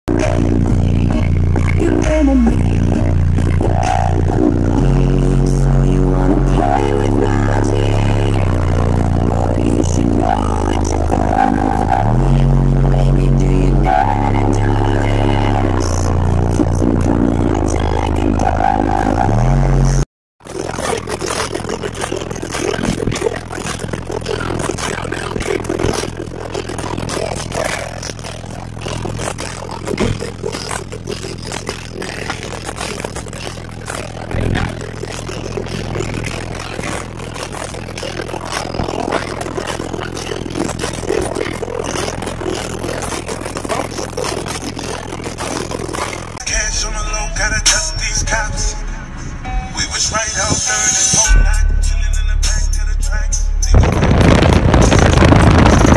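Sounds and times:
deep bass drone: 0:00.0 - 0:55.9
bass-heavy music from subwoofers: 0:00.1 - 0:55.9.

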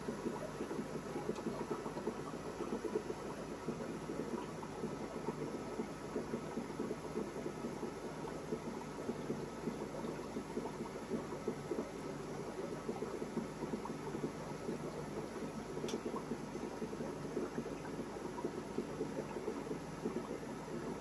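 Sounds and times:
aquarium filter bubbling: 0:00.0 - 0:21.0.

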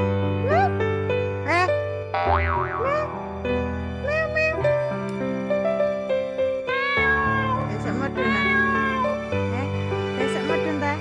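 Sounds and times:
background music: 0:00.0 - 0:11.0
cat meowing: 0:06.6 - 0:09.5.

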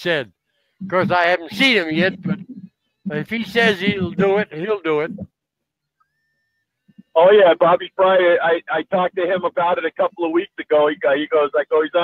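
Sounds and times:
man's voice: 0:00.0 - 0:00.2, 0:00.9 - 0:02.4, 0:03.1 - 0:05.2, 0:07.1 - 0:12.0.

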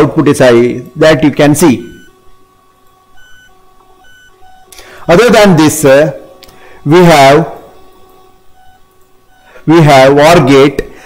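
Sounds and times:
soft held electronic notes: 0:00.0 - 0:10.7
short high electronic beeps: 0:01.8 - 0:02.2, 0:03.2 - 0:05.1, 0:08.5 - 0:09.6.

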